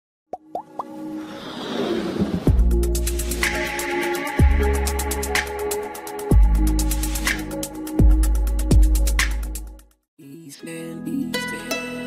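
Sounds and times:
light music: 2.3s - 9.8s, 10.5s - 12.0s.

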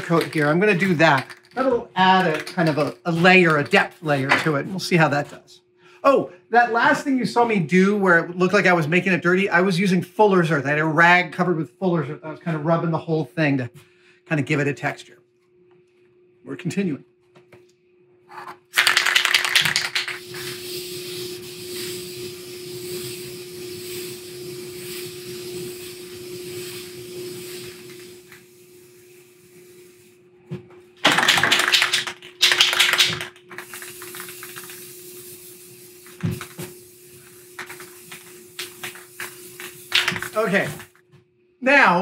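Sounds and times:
spray can ball rattling: 0.0s - 4.5s, 18.7s - 30.1s, 31.0s - 41.0s
steady low hum: 20.0s - 31.0s
spray hiss: 20.1s - 30.2s, 33.6s - 40.9s.

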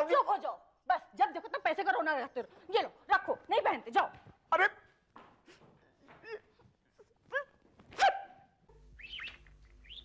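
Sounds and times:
birds chirping: 8.8s - 10.0s.

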